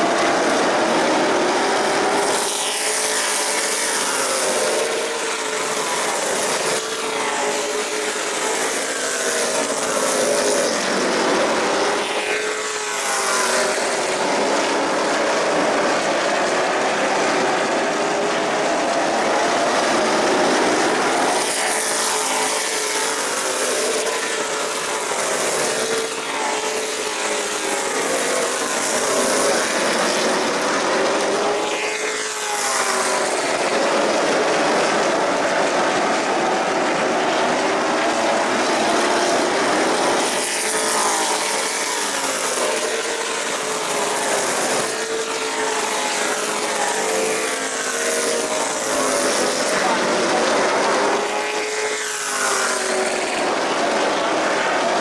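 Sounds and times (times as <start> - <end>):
race cars passing by: 0.0 - 55.0
racing car engines droning: 0.0 - 55.0.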